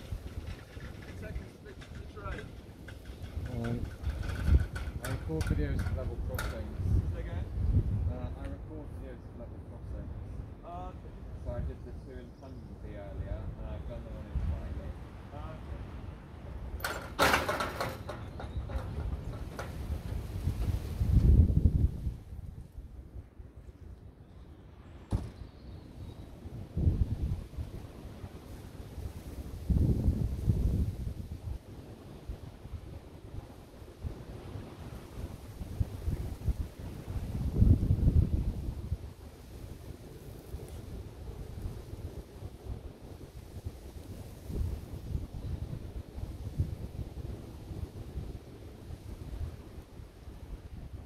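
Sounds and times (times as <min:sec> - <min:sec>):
loud clatter: 0:00.0 - 0:06.6, 0:16.8 - 0:19.9
wind rumble on microphone: 0:00.0 - 0:51.0
sharp knock: 0:25.1 - 0:25.4.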